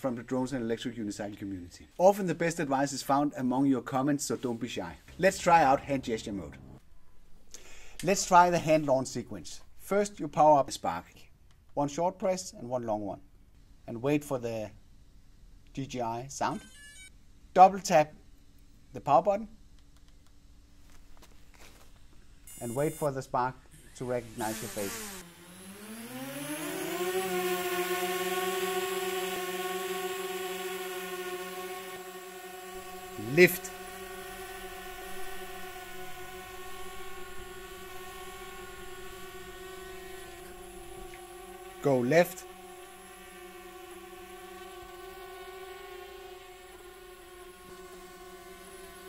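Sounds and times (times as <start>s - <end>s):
drone propellers buzzing: 5.0s - 6.8s, 22.4s - 49.0s.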